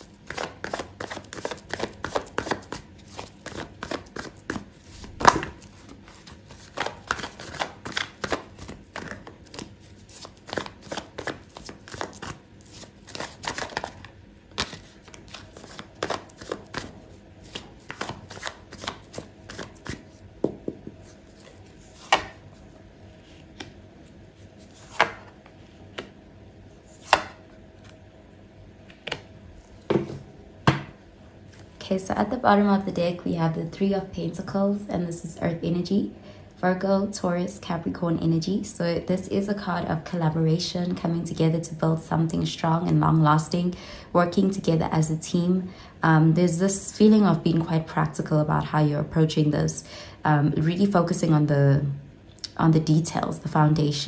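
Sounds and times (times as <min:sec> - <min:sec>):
cards being shuffled: 0:00.1 - 0:22.5.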